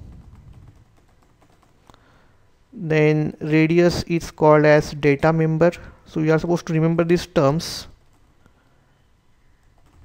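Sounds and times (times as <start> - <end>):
soft keyboard keystrokes: 0.0 - 2.0.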